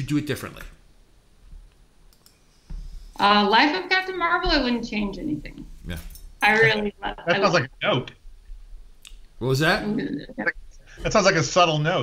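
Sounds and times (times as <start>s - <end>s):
faint sharp clicks: 1.7s - 2.4s.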